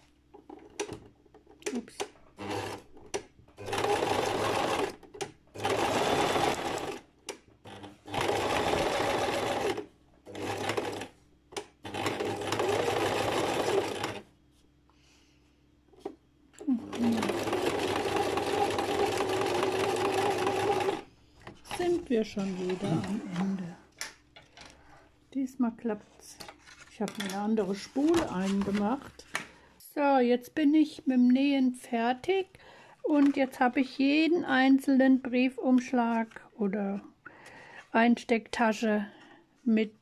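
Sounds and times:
sewing machine stitching: 1.7 - 7.0, 7.6 - 14.3, 16.7 - 21.0.

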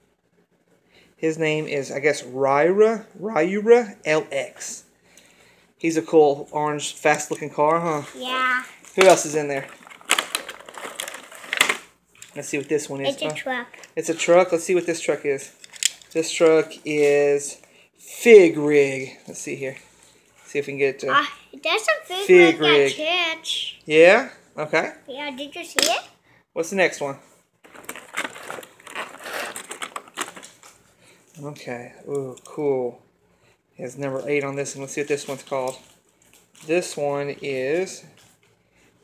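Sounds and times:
plastic packaging crinkling: 8.7 - 12.4, 27.6 - 30.9, 35.4 - 36.7
plastic blister tray crackling: 8.9 - 12.4, 27.6 - 30.8.

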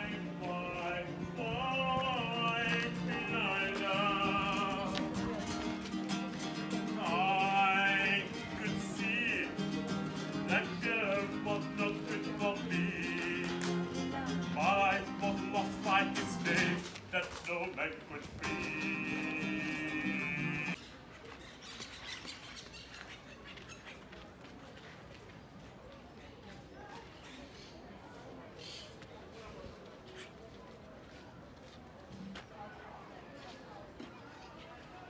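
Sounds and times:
person singing with vibrato: 0.0 - 5.4, 6.7 - 16.9, 18.2 - 20.8
guitar: 0.0 - 20.8.

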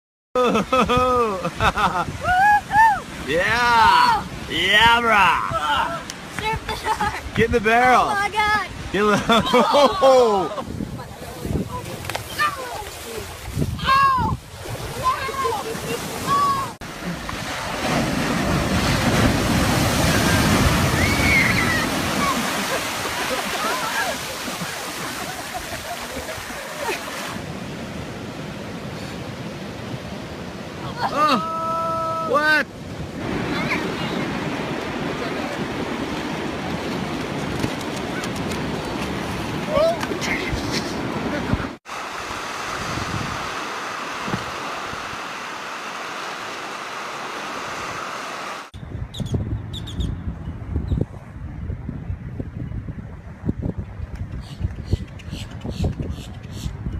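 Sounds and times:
surf washing up beach: 0.4 - 48.8
wind rumbling on microphone: 10.3 - 31.0, 31.6 - 45.3, 48.8 - 56.9
person crying out loudly: 31.0 - 32.5.

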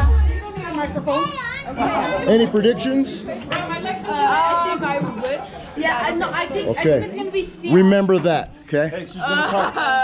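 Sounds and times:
music with bass: 0.0 - 0.6
children chattering: 0.0 - 10.0.

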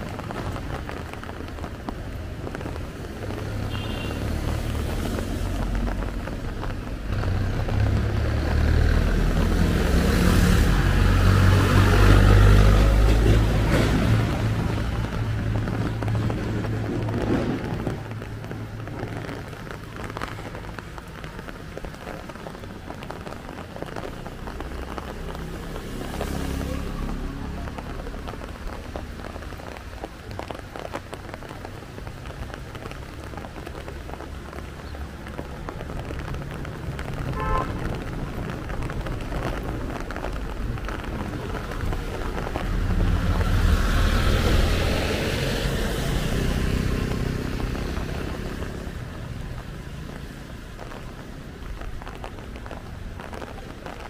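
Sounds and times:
rain hiss: 0.0 - 54.0
tyres on wet tarmac: 0.0 - 54.0.

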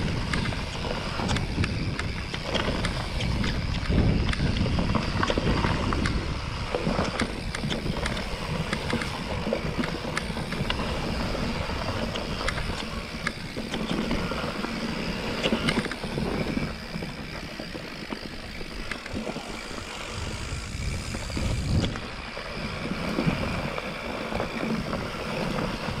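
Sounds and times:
bike rattles and clicks: 0.0 - 26.0
wind buffeting microphone: 0.0 - 26.0.

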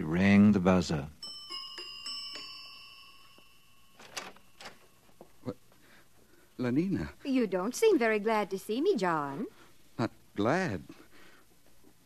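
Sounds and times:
bell-like door chime: 1.2 - 5.2.

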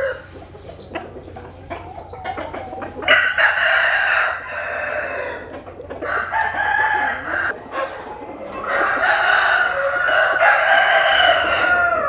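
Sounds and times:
rooster crowing: 0.0 - 0.3, 3.1 - 7.6, 8.6 - 12.0.

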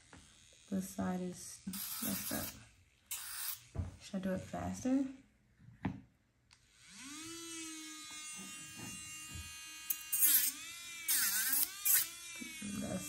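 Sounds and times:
electric nail drill whining: 0.0 - 4.8, 6.6 - 13.0.

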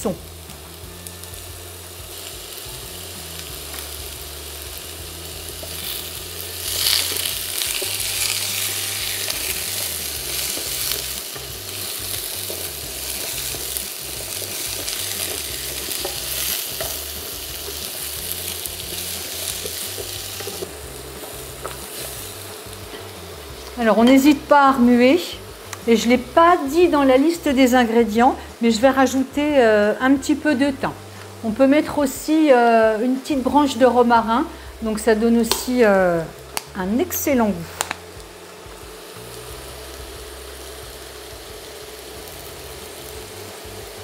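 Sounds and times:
squash sizzling in a frying pan: 0.0 - 44.0
spatula stirring in a pan: 5.4 - 23.2.

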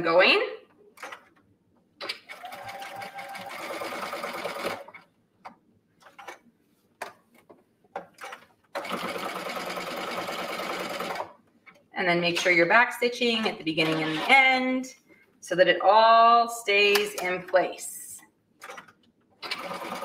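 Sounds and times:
sewing machine stitching: 2.0 - 5.0, 8.2 - 11.4, 18.6 - 20.0.

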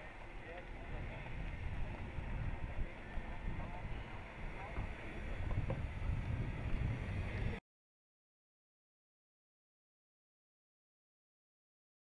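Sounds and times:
vehicle driving slowly over rock: 0.0 - 7.6
wind on microphone: 0.0 - 7.6.

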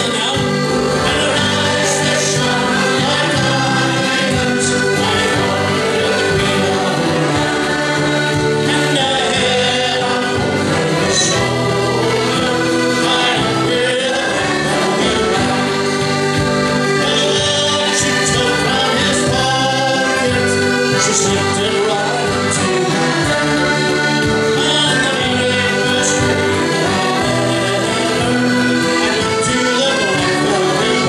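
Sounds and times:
accordions: 0.0 - 31.0
acoustic guitar: 0.0 - 31.0.

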